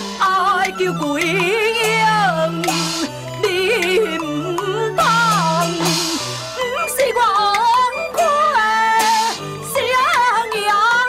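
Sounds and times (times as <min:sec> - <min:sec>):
traditional instrumental accompaniment: 0:00.0 - 0:11.0
person singing opera: 0:00.2 - 0:11.0.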